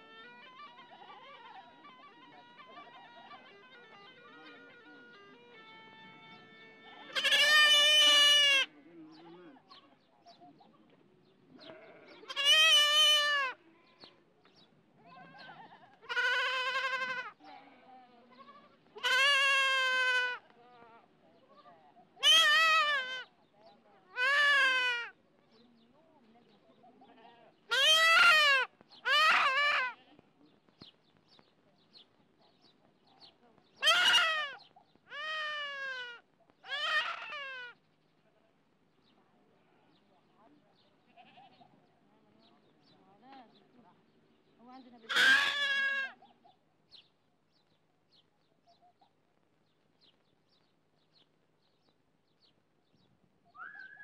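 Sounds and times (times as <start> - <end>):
young goat bleating: 0.0 - 8.8, 11.6 - 14.2, 15.1 - 21.0, 22.2 - 23.3, 24.1 - 25.2, 27.0 - 30.1, 33.8 - 37.8, 41.0 - 41.7, 45.0 - 46.2.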